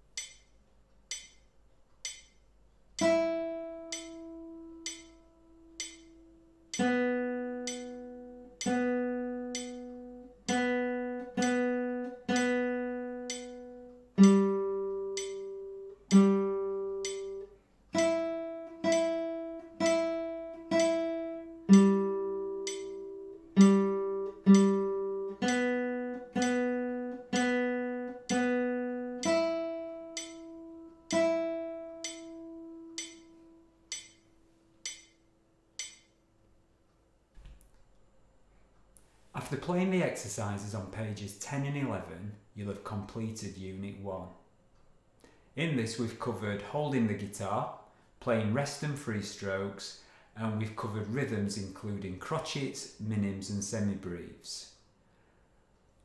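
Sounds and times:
metronome click: 0:00.0 - 0:36.2
plucked nylon-string guitar notes: 0:03.0 - 0:34.3.

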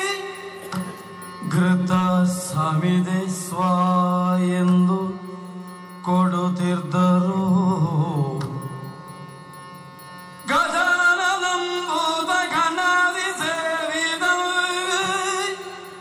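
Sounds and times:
person chanting in long notes: 0:00.0 - 0:09.0
steady drone: 0:00.0 - 0:16.0.

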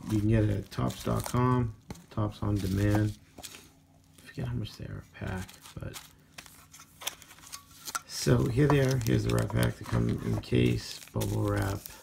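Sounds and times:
faint foil rustling: 0:00.0 - 0:12.0.

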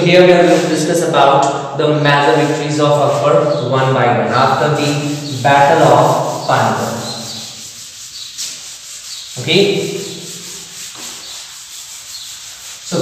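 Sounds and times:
duster erasing chalkboard: 0:00.0 - 0:01.2, 0:02.0 - 0:13.0.

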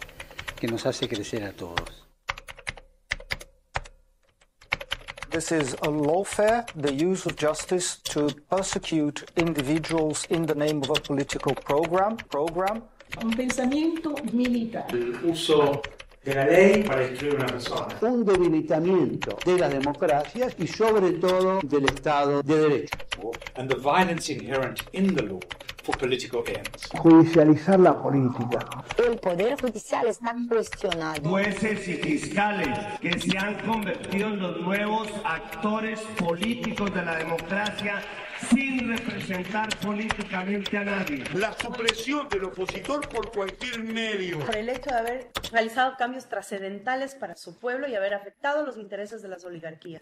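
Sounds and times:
person speaking: 0:00.0 - 0:02.2, 0:04.7 - 0:45.9
sharp irregular clicks: 0:00.0 - 0:45.8.

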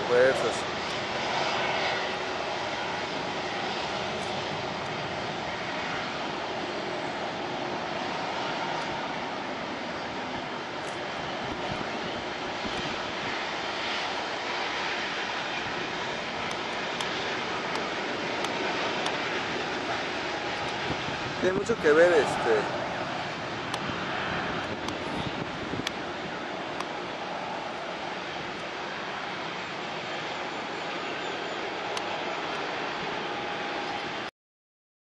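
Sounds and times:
jet engines at climb-out: 0:00.0 - 0:34.3.

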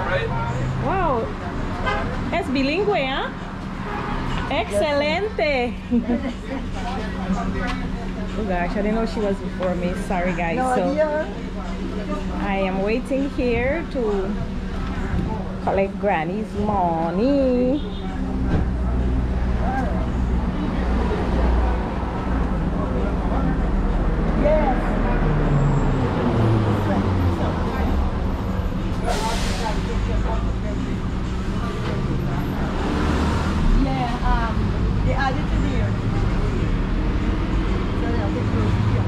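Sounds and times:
faint voices: 0:00.0 - 0:39.0
road traffic rumble: 0:00.0 - 0:39.0.

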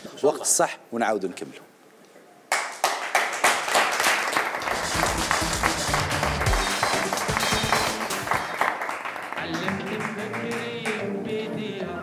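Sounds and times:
audience applauding: 0:02.5 - 0:11.1
music with bass line: 0:04.6 - 0:08.6.

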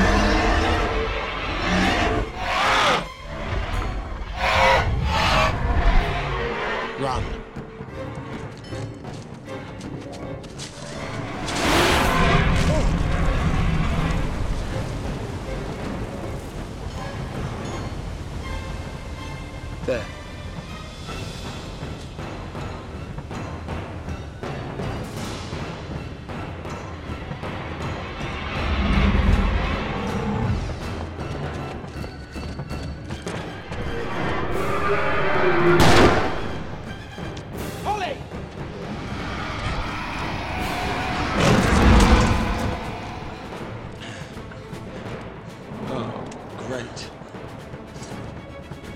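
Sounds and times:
orchestral film score: 0:00.0 - 0:48.9.

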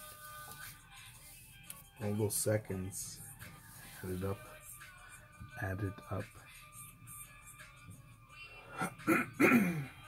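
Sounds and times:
man clearing his throat: 0:08.8 - 0:10.0.

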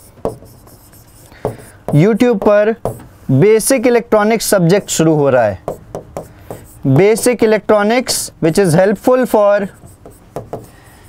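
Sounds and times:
pen scratching on whiteboard: 0:00.0 - 0:03.1, 0:05.6 - 0:07.4, 0:09.7 - 0:10.8
pen tap: 0:01.4 - 0:03.1, 0:09.8 - 0:10.7.

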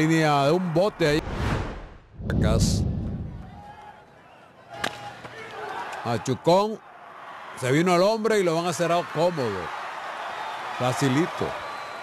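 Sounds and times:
low rumble: 0:01.2 - 0:03.7.

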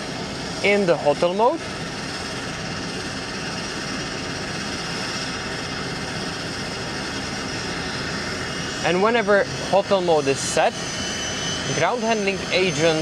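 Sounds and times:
faint high whine: 0:00.0 - 0:13.0
turboprop engine running: 0:00.0 - 0:13.0.

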